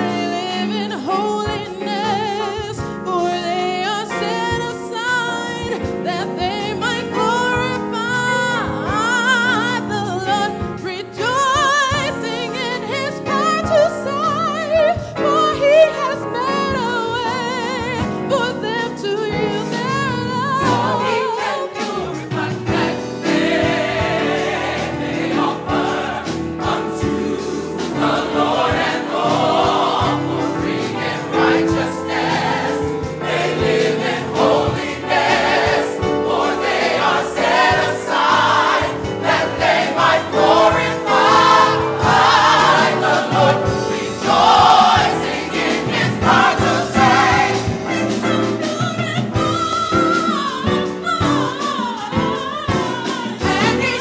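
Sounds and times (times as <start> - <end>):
gospel choir singing: 0.0 - 54.0.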